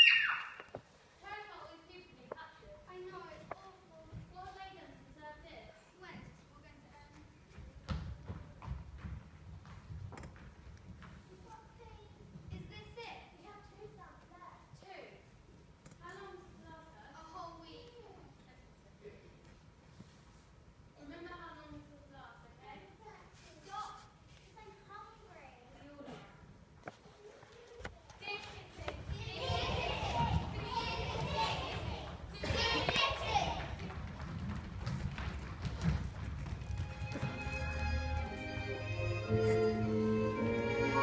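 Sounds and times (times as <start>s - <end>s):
children shouting and chattering: 0.0s - 0.8s, 26.9s - 33.9s.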